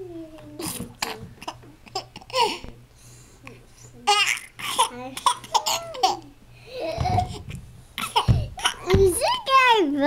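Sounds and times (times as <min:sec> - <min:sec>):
baby laughing: 0:04.1 - 0:09.0.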